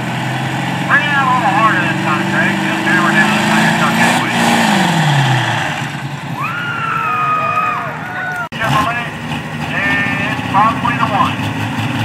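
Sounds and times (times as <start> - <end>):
diesel truck engine rumbling: 0.0 - 12.0
voice over loudspeaker: 0.9 - 4.5, 8.5 - 11.4.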